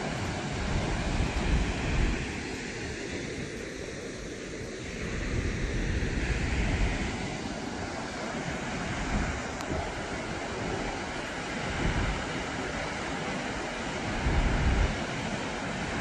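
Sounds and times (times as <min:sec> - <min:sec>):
water rushing through spillway: 0:00.0 - 0:16.0
wind gusting on microphone: 0:00.0 - 0:16.0.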